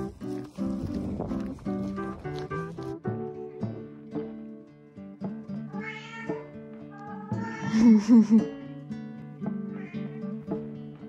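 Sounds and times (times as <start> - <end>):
plucked guitar music: 0.0 - 11.0
cat meowing: 5.7 - 8.3, 9.7 - 10.3.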